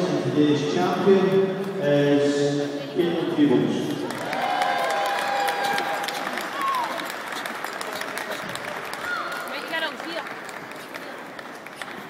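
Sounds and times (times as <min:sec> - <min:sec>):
crowd noise: 0:00.0 - 0:12.0
audience applauding: 0:03.9 - 0:12.0.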